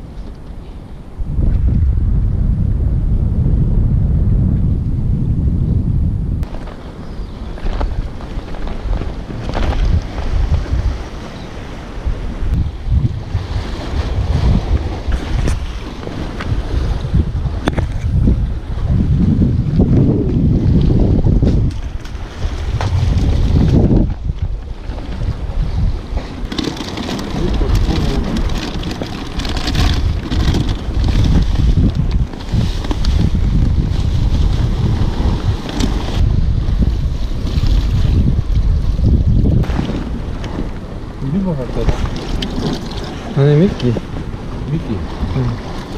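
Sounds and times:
wind buffeting microphone: 0:00.0 - 0:45.9
sea waves breaking on concrete: 0:06.4 - 0:45.9.

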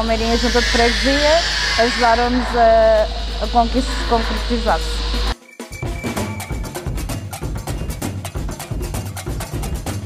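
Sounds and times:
steady low hum: 0:00.0 - 0:05.4.

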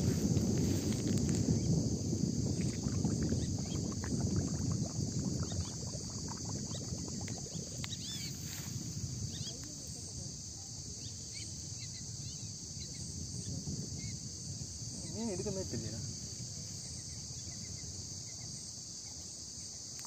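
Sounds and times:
wind rumble on microphone: 0:00.0 - 0:19.0
insects droning: 0:00.0 - 0:20.0.

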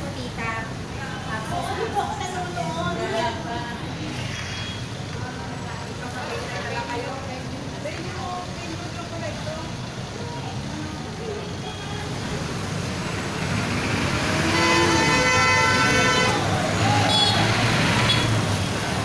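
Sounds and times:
street traffic: 0:00.0 - 0:19.0
motorcycles pulling away: 0:12.1 - 0:19.0
vehicle horn: 0:14.3 - 0:18.4.

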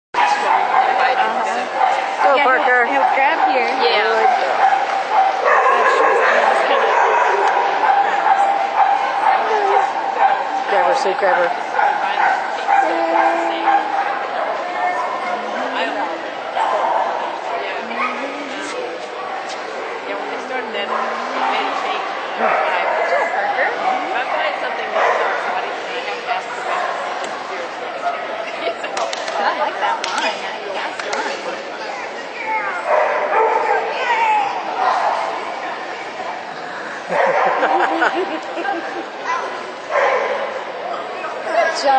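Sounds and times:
dog barking: 0:00.2 - 0:01.2, 0:03.0 - 0:10.6, 0:11.8 - 0:15.1, 0:22.4 - 0:25.5, 0:32.9 - 0:33.9, 0:37.1 - 0:38.0, 0:39.9 - 0:40.6
people talking: 0:00.2 - 0:41.9.

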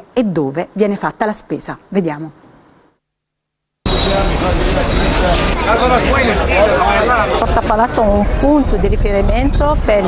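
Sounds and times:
busy street noise: 0:03.8 - 0:10.0
tram wheels squealing on rails: 0:03.9 - 0:06.5
crowd voices: 0:03.9 - 0:10.0.

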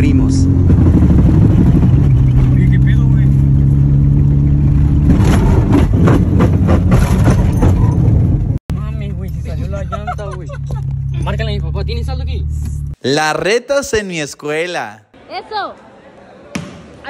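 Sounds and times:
man's voice: 0:13.0 - 0:15.1.

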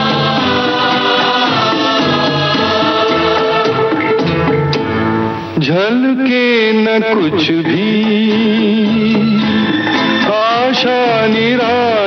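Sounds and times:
instrumental accompaniment: 0:00.0 - 0:12.0.

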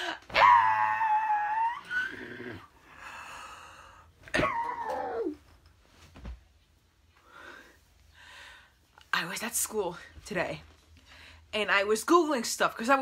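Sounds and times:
woman shrieking: 0:00.0 - 0:02.2.

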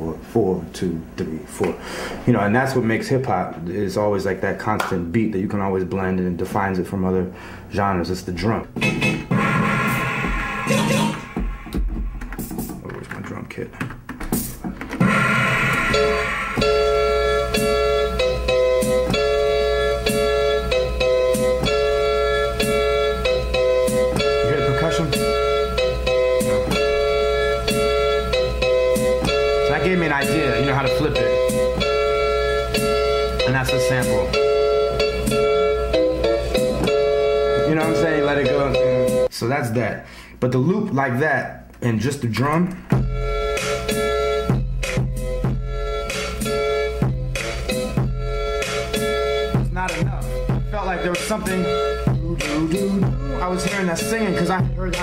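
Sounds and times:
sampled chord loop: 0:08.6 - 0:13.2, 0:14.2 - 0:39.3, 0:42.6 - 0:55.0
steady drum beat: 0:08.8 - 0:13.2, 0:14.0 - 0:34.6, 0:42.8 - 0:55.0.

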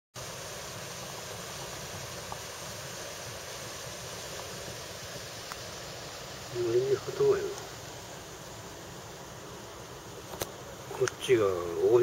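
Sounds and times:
even hiss: 0:00.2 - 0:12.0.

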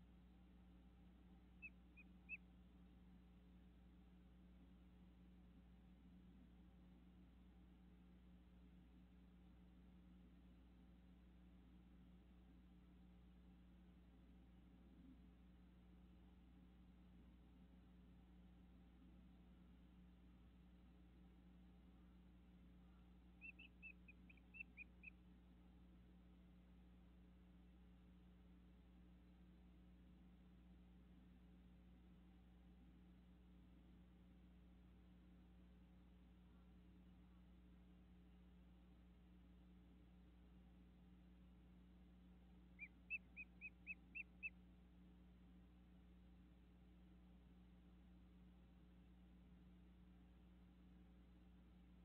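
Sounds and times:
steady low hum: 0:00.0 - 0:52.0
bird chirping: 0:01.6 - 0:02.4, 0:22.9 - 0:25.2, 0:42.8 - 0:44.6.

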